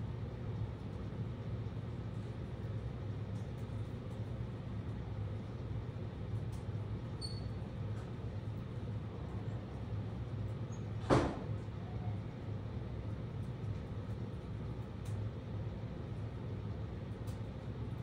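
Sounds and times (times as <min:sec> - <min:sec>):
low hum with faint hiss: 0:00.0 - 0:18.0.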